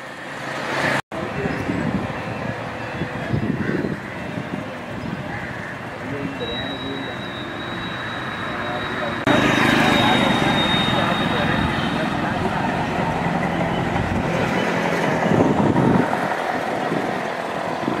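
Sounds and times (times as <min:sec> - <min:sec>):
indistinct voices: 0:01.2 - 0:18.0
motor vehicle running: 0:05.8 - 0:18.0.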